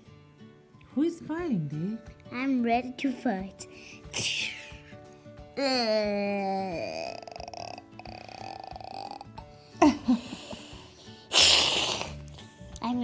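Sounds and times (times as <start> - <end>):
soft background music: 0.0 - 13.0
child growling: 5.6 - 9.4.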